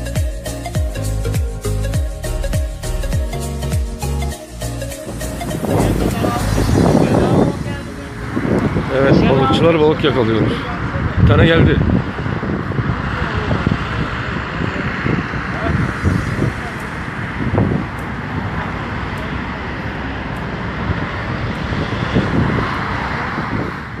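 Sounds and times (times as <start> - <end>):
road traffic: 0.0 - 24.0
indistinct voices: 1.0 - 11.2
wind on microphone: 5.0 - 24.0.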